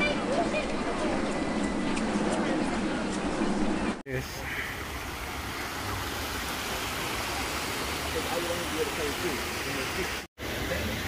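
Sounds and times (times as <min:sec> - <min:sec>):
water rushing over a weir: 0:04.1 - 0:11.0.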